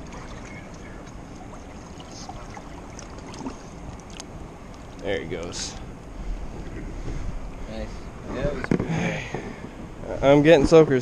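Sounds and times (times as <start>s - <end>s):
faint small splashes: 0.0s - 5.0s.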